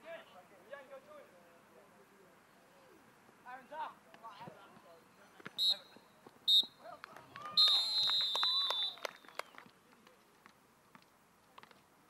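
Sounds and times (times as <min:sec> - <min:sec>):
referee's whistle blasts: 0:05.6 - 0:06.8, 0:07.6 - 0:09.1.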